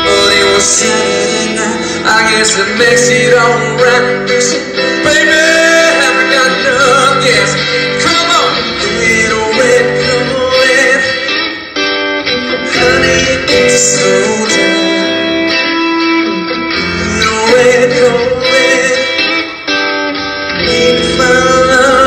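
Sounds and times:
electric guitar lead line: 0:00.0 - 0:22.0
looped backing part: 0:00.0 - 0:22.0.

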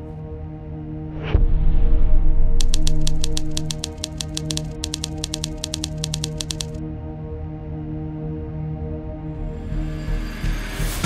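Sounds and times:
typewriter key clicks: 0:02.6 - 0:06.8.

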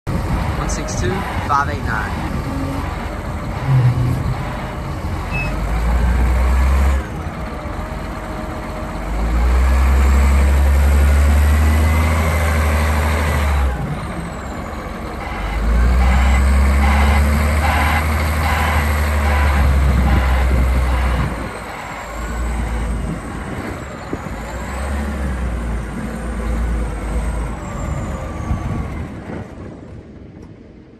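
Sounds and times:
diesel engine revving: 0:00.1 - 0:29.4.

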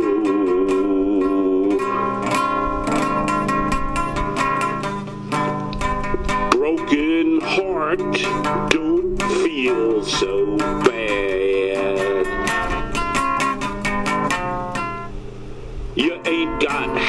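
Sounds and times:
acoustic guitar picking: 0:00.0 - 0:17.0.

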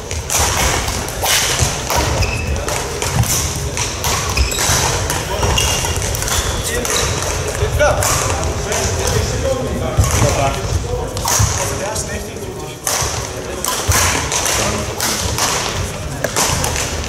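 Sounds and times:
shoes squeaking on court floor: 0:00.0 - 0:11.8
murmur of voices: 0:00.0 - 0:17.0
rackets hitting shuttlecock: 0:00.0 - 0:17.0.

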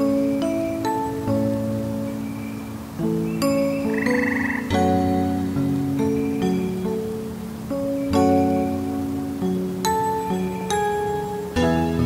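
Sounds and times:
slow harp music: 0:00.0 - 0:12.0.

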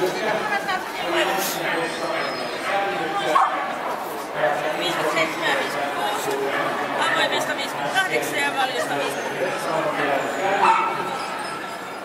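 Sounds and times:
dog yipping: 0:10.6 - 0:11.6.

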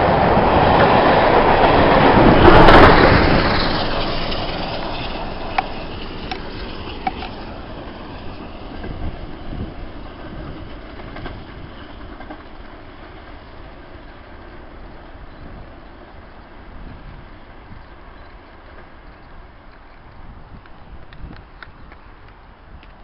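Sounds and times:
train rumbling and wheel clatter: 0:00.0 - 0:23.0.

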